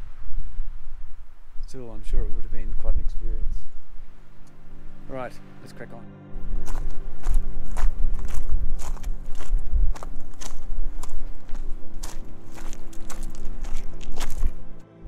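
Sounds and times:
background music with held tones: 3.3s - 15.0s
footsteps walking: 6.4s - 14.8s.

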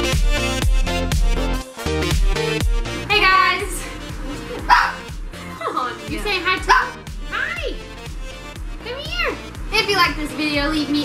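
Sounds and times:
electronic background music: 0.0s - 11.0s
dog barking: 4.6s - 5.1s, 6.7s - 7.0s.

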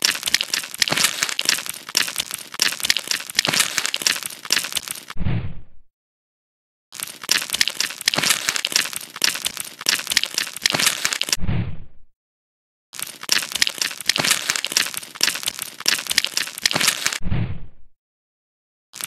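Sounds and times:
knife crunching through crust: 0.0s - 5.1s, 7.0s - 11.4s, 13.0s - 17.2s
short low thump: 5.2s - 5.8s, 11.4s - 12.0s, 17.2s - 17.8s.

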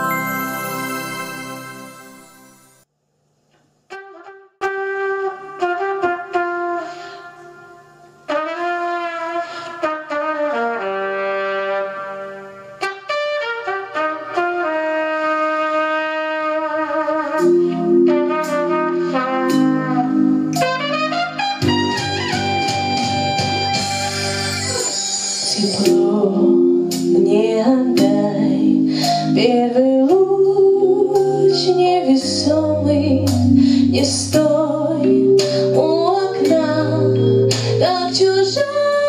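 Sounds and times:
brass-like lead with vibrato: 0.0s - 2.8s, 3.9s - 27.3s
chiming jingle: 0.0s - 2.8s
slow blues backing track: 12.8s - 39.0s.

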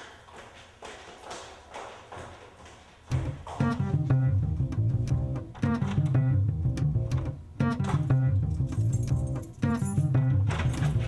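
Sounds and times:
footsteps on hard floor: 0.0s - 4.1s.

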